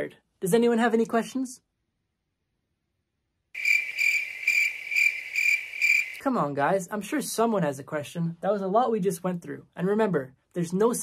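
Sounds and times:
crickets chirping: 3.6 - 6.2.

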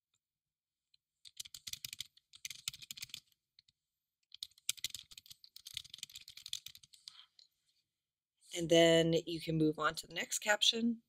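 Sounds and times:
typing on computer keyboard: 1.2 - 3.4, 4.3 - 7.0.

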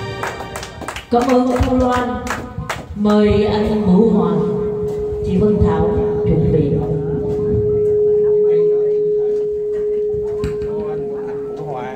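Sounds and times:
steady pure tone: 3.2 - 11.9
faint voices: 5.2 - 11.9.

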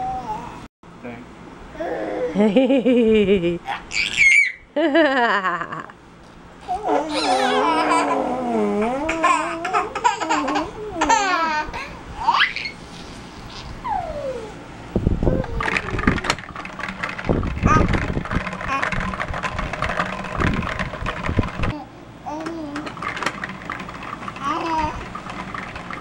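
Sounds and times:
baby laughing and squealing: 3.6 - 4.7, 6.7 - 12.9, 13.5 - 14.6.

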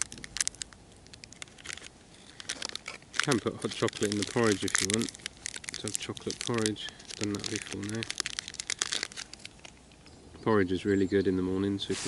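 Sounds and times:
sachet crinkling and tearing: 0.0 - 10.1.

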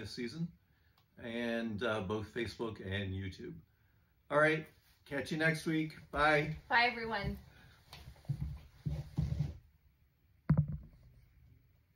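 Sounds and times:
soft thuds and rustling: 8.1 - 9.6.

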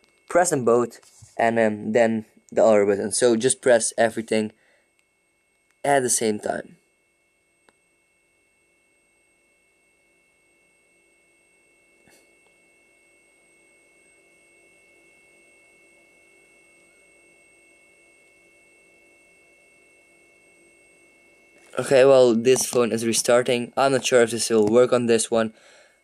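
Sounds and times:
faint electronic whine: 0.0 - 26.0.

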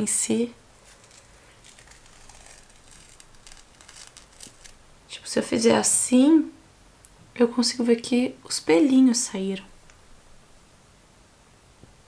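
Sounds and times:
face mask peeling off skin: 0.8 - 4.9.

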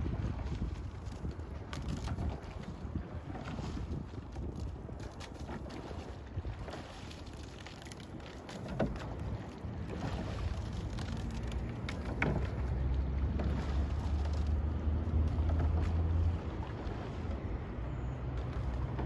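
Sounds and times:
faint water wash: 0.0 - 19.0
oars knocking and splashing: 0.0 - 19.0
wind buffeting microphone: 0.0 - 19.0.

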